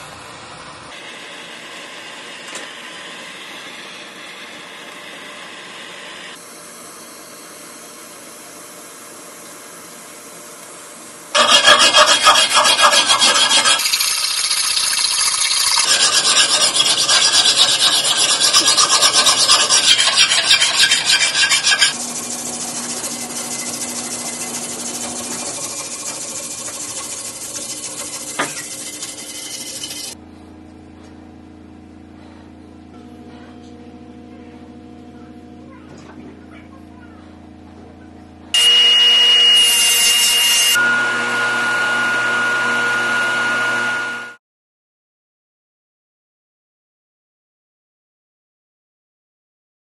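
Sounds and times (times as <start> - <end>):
hand file rasping on chain: 11.4 - 13.9, 15.7 - 22.0, 22.7 - 30.2
polishing wheel whining: 11.4 - 30.2
low machine hum: 14.8 - 44.0.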